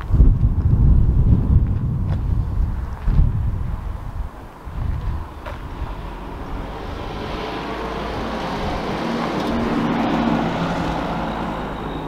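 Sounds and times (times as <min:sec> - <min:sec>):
motor vehicle passing: 0:04.7 - 0:12.0.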